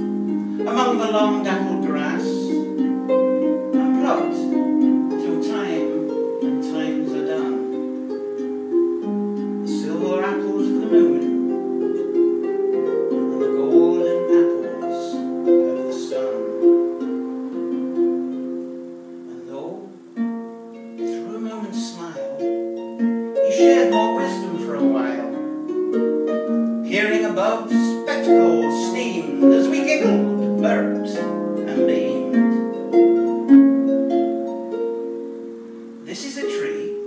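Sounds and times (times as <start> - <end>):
harp melody: 0.0 - 37.0.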